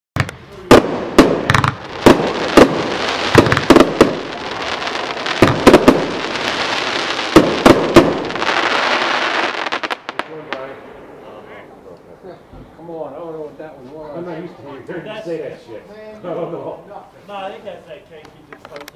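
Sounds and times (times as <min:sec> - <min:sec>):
fireworks bangs: 0:00.2 - 0:12.9
fireworks hiss: 0:00.6 - 0:11.6
voices: 0:10.2 - 0:18.9.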